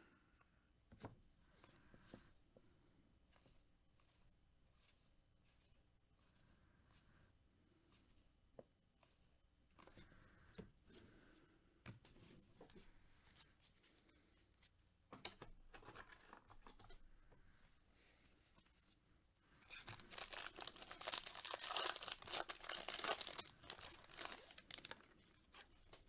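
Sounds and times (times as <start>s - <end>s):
wrapper tearing and crinkling: 19.6s - 26.0s.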